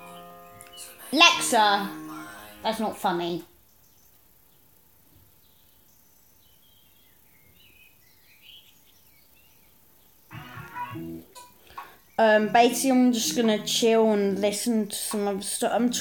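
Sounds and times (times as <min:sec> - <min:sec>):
faint bird chirps: 0:03.5 - 0:12.6
pitched human voice: 0:10.3 - 0:11.1, 0:12.2 - 0:14.4.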